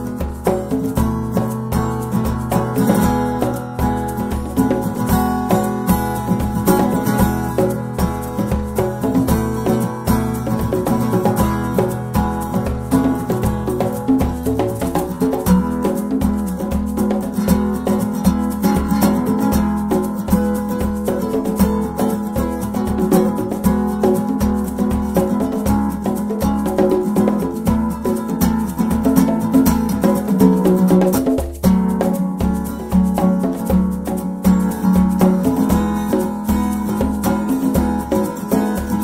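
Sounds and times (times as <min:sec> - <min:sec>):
acoustic guitar playing: 0:00.0 - 0:39.0
congas: 0:00.0 - 0:39.0
shaker: 0:00.0 - 0:39.0.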